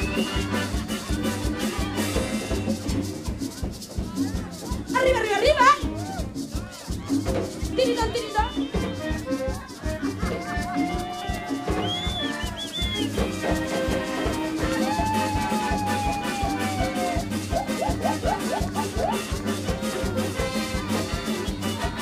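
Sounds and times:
congas and drum kit beat: 0.0s - 22.0s
cumbia band playing: 0.0s - 22.0s.

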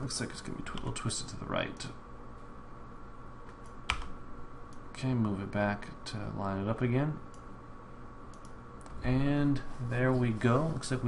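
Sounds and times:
room and computer hum: 0.0s - 11.0s
computer control click: 8.3s - 8.6s.

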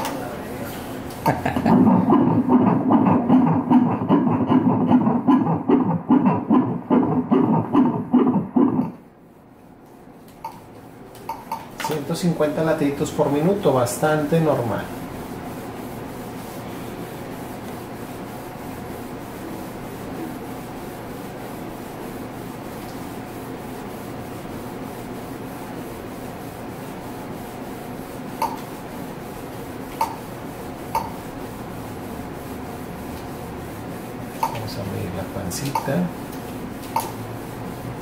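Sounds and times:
ultrasound low hum and rubbing: 0.0s - 38.0s.

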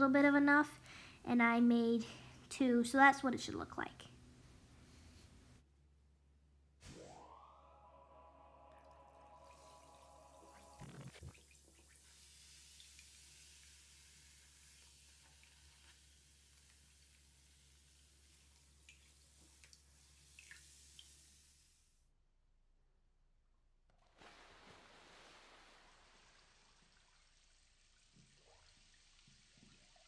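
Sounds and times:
rising tone: 6.8s - 11.4s
bath bomb fizzing: 8.7s - 21.8s, 23.9s - 30.0s
small drips and ticks: 8.9s - 21.7s, 24.0s - 30.0s
splash-like burst: 24.0s - 27.3s.

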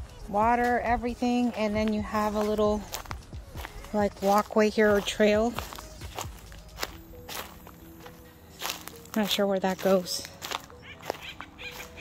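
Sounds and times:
footsteps on dry leaves: 0.0s - 12.0s.

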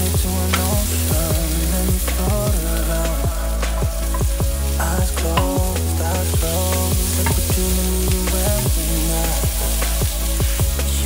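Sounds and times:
background music with steady beat: 0.0s - 11.0s
sausage and onion sizzling in pan: 0.0s - 11.0s.

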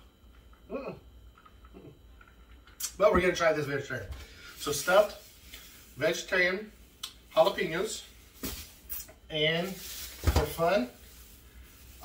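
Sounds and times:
plastic bag crinkling: 8.2s - 12.0s.

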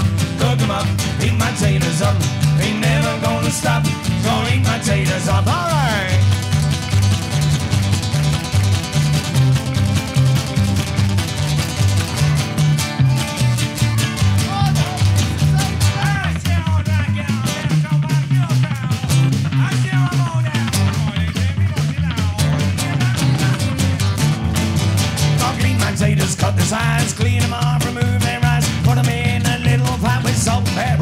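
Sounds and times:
double bass bouncing rhythm: 0.0s - 31.0s
live folk rock band playing: 0.0s - 31.0s.

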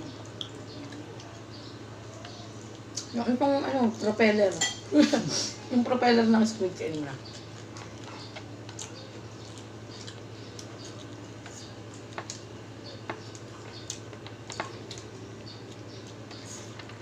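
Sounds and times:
steady low hum: 0.0s - 17.0s
chewing clicks and smacks: 0.1s - 3.2s, 6.9s - 17.0s.

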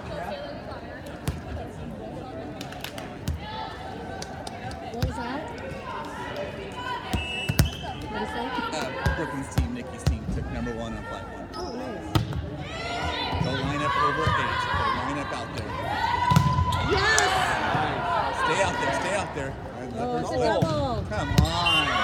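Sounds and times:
players and spectators shouting: 5.0s - 22.0s
volleyball hit slaps: 16.2s - 18.0s.

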